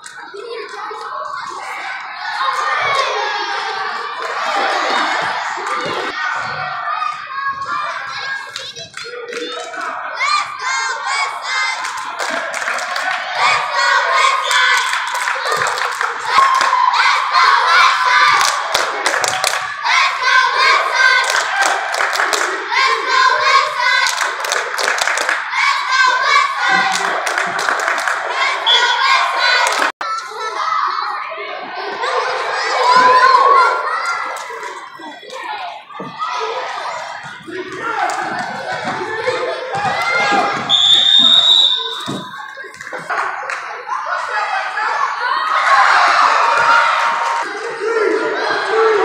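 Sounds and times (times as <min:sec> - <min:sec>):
cheerleaders chanting: 0:00.0 - 0:49.0
hand claps: 0:24.0 - 0:25.4, 0:26.9 - 0:28.2
referee's whistle blast: 0:40.7 - 0:42.4.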